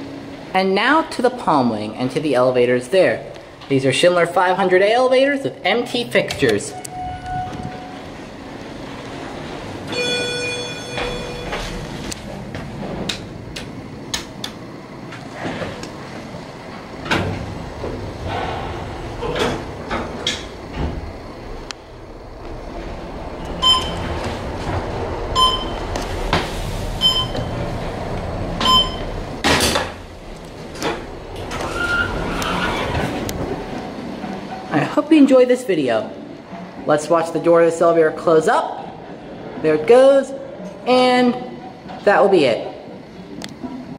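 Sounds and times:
elevator doors sliding: 6.2s - 42.3s
elevator car low rumble: 6.3s - 40.9s
elevator arrival chime: 6.7s - 8.2s, 9.8s - 12.1s, 23.4s - 24.4s, 25.3s - 26.0s, 27.0s - 27.8s, 28.6s - 29.4s
short electronic beeps: 23.6s - 24.0s, 25.4s - 25.8s, 27.0s - 27.5s, 28.6s - 29.1s.

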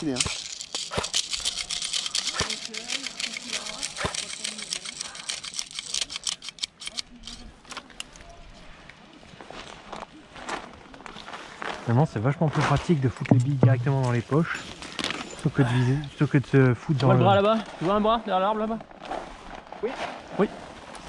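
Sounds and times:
small clicks: 0.2s - 8.2s.

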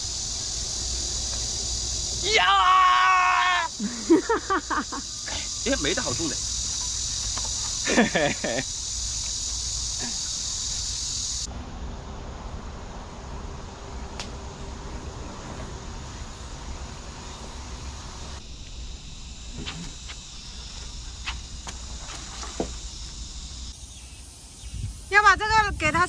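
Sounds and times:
insects buzzing: 0.0s - 26.0s.

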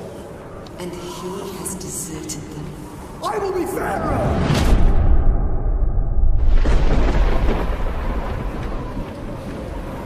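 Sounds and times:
wind and rain rushing: 3.9s - 10.0s
thunder rumble: 4.2s - 10.0s.

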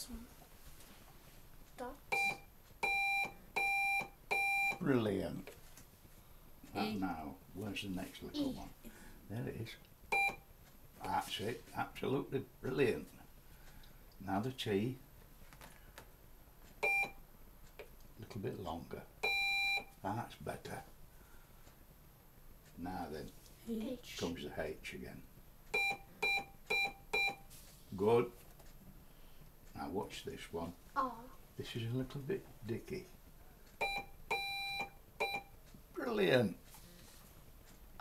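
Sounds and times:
morse code beep: 2.1s - 4.8s, 10.1s - 10.4s, 16.8s - 17.2s, 19.2s - 19.9s, 25.7s - 27.5s, 33.8s - 35.5s.

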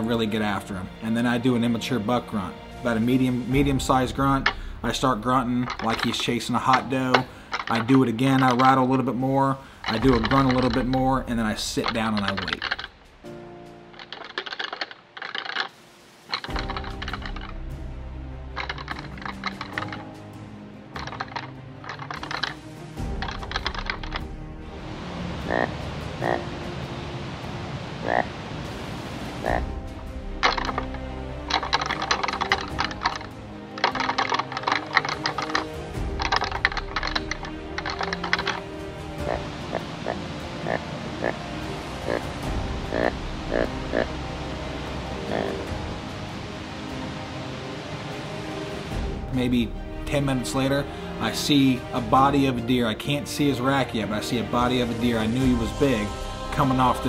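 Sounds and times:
rattling antlers clacking: 0.0s - 24.4s, 29.4s - 45.9s, 48.1s - 57.0s
background music: 0.0s - 57.0s.

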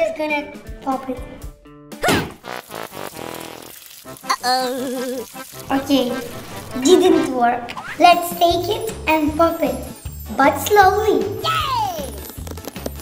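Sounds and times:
background music: 0.0s - 13.0s
fast crackling rattle: 2.4s - 7.0s, 11.9s - 13.0s
person speaking: 4.3s - 9.4s.

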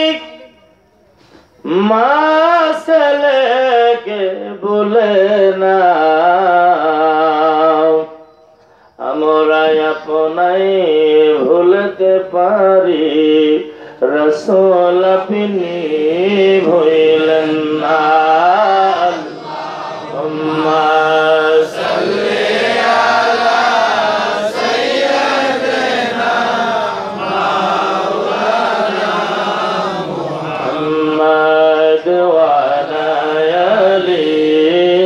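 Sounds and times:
man chanting devotional song: 0.0s - 0.7s, 1.5s - 8.2s, 8.9s - 35.0s.

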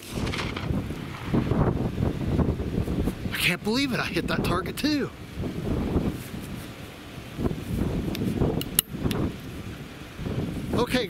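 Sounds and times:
low rumble: 0.0s - 3.3s
wind buffeting microphone: 0.0s - 11.0s
sharp click: 8.1s - 9.2s.

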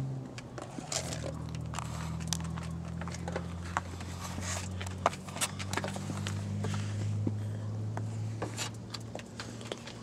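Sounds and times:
steady low hum: 0.0s - 10.0s
footsteps on paved road: 0.6s - 10.0s.

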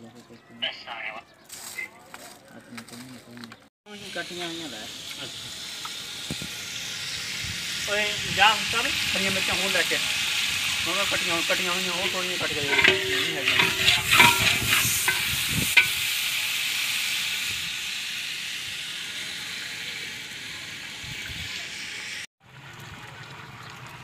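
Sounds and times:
food sizzling in a pot: 3.9s - 22.3s
metal ladle scraping a pot: 9.0s - 16.3s.

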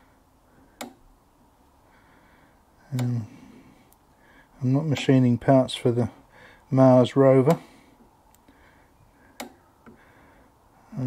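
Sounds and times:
sharp click: 9.4s - 9.6s.

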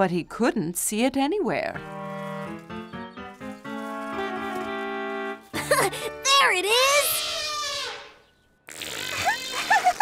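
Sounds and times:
cartoon elephant trumpeting: 6.7s - 10.0s.

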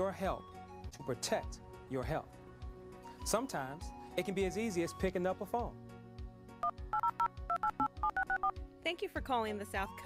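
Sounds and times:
telephone keypad beeps: 6.6s - 8.6s.

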